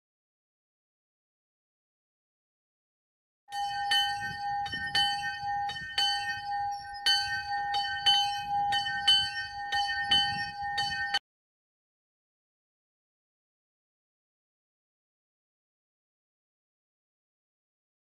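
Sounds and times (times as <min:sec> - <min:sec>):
small bell rung rapidly: 0:03.6 - 0:11.2.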